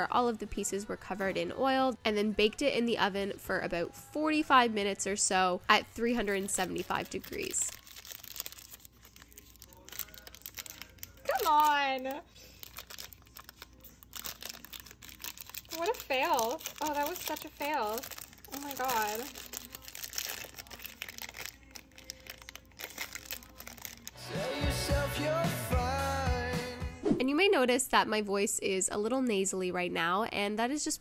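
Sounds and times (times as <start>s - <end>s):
foil wrapper crinkling and tearing: 6.1s - 24.2s
background music with beat: 24.2s - 27.1s.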